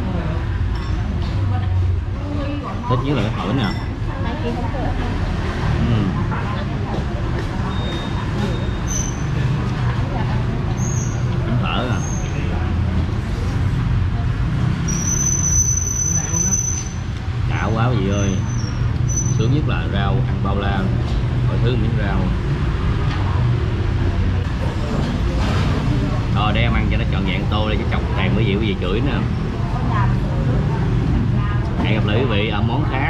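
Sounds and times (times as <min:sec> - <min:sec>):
diners chatting: 0:00.0 - 0:33.0
street traffic rumble: 0:00.0 - 0:33.0
people talking: 0:01.4 - 0:08.7, 0:11.4 - 0:12.7, 0:17.5 - 0:18.4, 0:19.4 - 0:22.4, 0:26.0 - 0:33.0.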